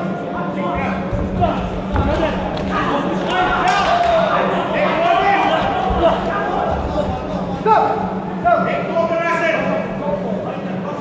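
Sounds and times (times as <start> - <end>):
steady low hum: 0.0 - 11.0
voices calling out in a hall: 0.0 - 11.0.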